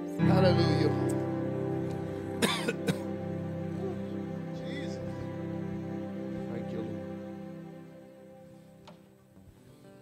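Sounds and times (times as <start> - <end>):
slow music with held chords: 0.0 - 10.0
person coughing: 2.4 - 3.1.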